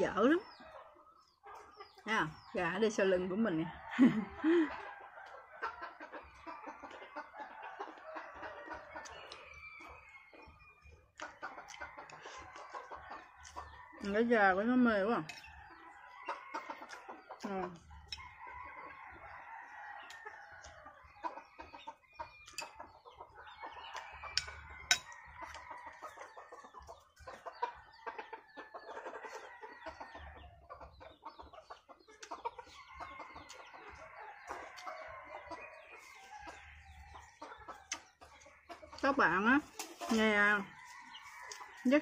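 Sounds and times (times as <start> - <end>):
chickens clucking: 0.0 - 42.0
roosters crowing: 3.5 - 10.6, 11.4 - 21.7, 22.4 - 30.9, 32.4 - 42.0.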